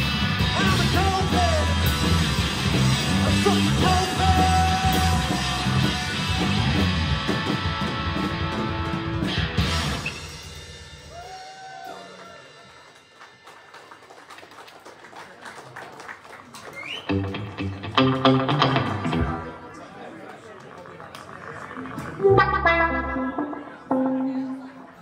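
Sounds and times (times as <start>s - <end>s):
live rock band playing: 0.0s - 13.3s, 17.0s - 19.8s, 21.7s - 25.0s.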